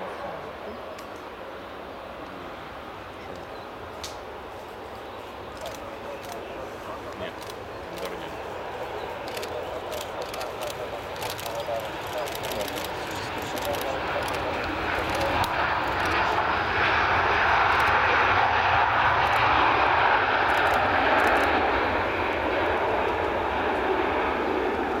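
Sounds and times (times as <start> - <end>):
jet engines in reverse thrust: 0.9 - 25.0.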